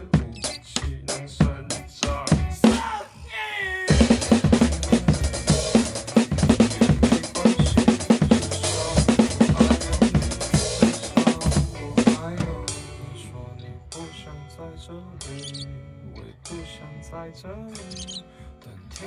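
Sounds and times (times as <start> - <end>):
acoustic drum kit groove: 0.0 - 3.0, 3.8 - 13.3, 15.2 - 15.6, 17.7 - 19.0
backing music track: 0.0 - 3.0, 3.9 - 19.0.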